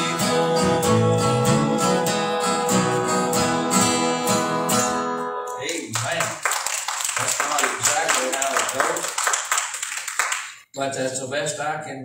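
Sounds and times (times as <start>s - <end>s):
congregation clapping: 5.6s - 10.6s.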